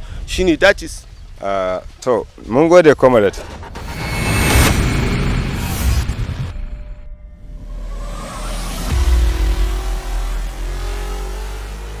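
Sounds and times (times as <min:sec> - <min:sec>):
deep boom: 0:03.4 - 0:11.0
rising whoosh: 0:03.6 - 0:12.0
held rising drone: 0:03.7 - 0:12.0.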